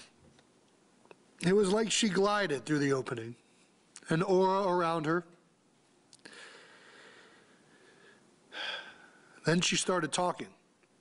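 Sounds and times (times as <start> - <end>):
man breathing heavily: 6.2 - 9.3
sharp gasping breath: 6.2 - 9.3.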